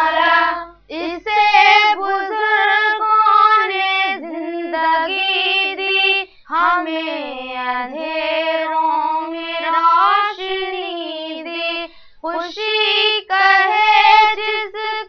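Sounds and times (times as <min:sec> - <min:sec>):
young woman singing: 0:00.0 - 0:15.0.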